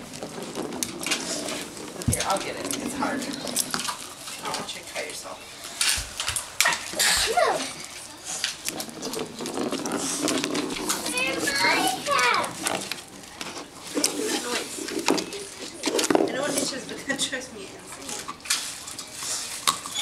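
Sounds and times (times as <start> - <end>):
children chattering and calling out: 6.8 - 9.2, 10.0 - 18.4.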